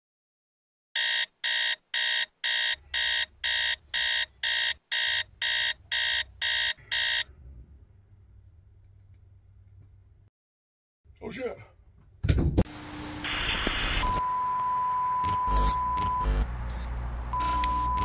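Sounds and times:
electronic alarm beeping: 1.0 - 7.3, 13.8 - 18.0.

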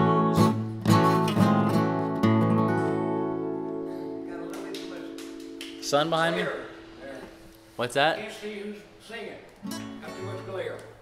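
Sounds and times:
acoustic guitar chord strummed: 0.0 - 6.0, 9.6 - 10.7.

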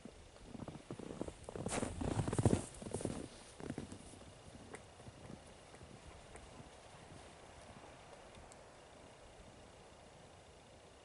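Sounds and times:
footsteps in deep snow: 0.5 - 7.8.

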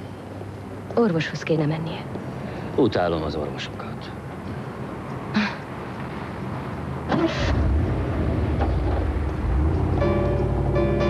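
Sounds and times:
car engine driving off: 7.1 - 11.0.

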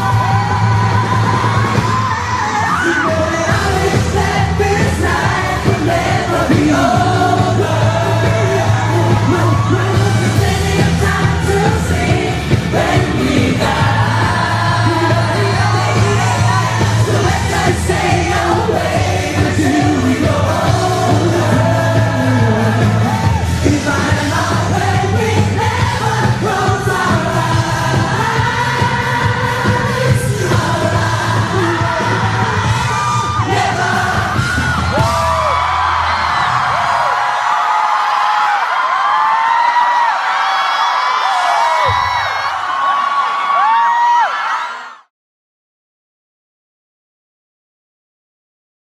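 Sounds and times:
band with heavy bass line: 0.0 - 37.4
crowd screaming and whooping: 0.0 - 45.1
man singing into microphone: 0.8 - 35.2.

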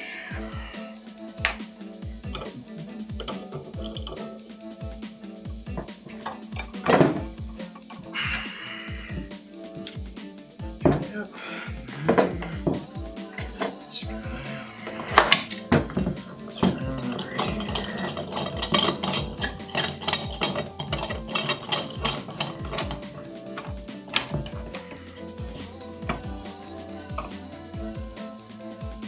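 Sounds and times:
background music: 0.0 - 29.0
metal clamps clinking: 3.2 - 4.3, 5.8 - 8.0, 14.9 - 25.0.

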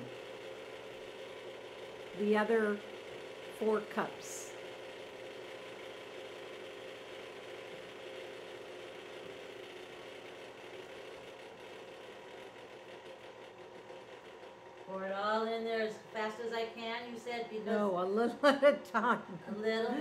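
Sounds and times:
electric stand mixer running: 0.0 - 20.0.

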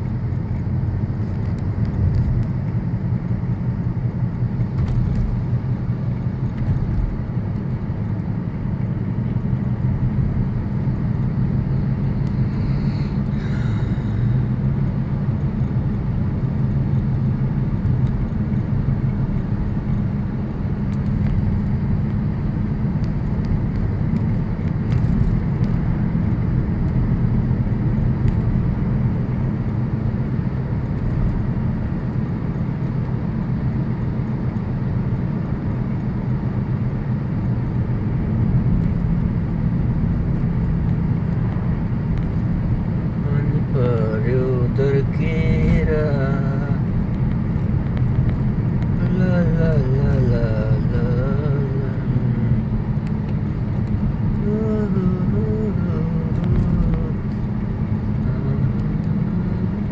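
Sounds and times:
car road noise rumble: 0.0 - 59.9.

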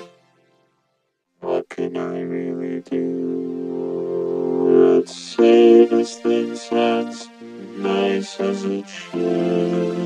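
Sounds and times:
synthesizer sustained chords: 1.4 - 10.0.

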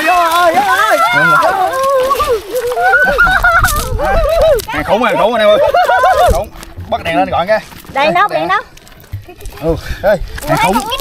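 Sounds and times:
excited high-pitched yelling: 0.5 - 4.9.

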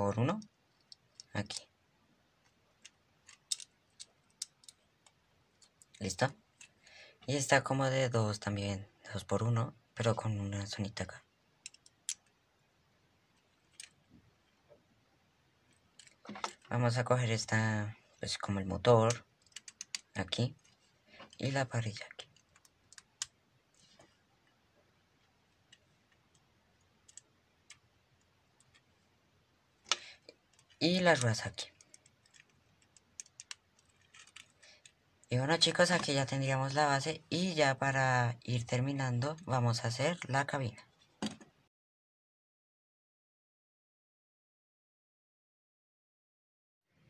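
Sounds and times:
plastic pieces clicking: 2.7 - 6.0, 11.6 - 12.4, 19.0 - 21.4, 25.6 - 28.9, 29.8 - 35.0.

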